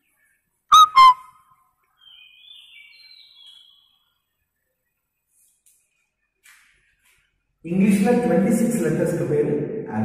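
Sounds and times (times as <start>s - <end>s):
chalk squeaking on blackboard: 0.7s - 1.2s.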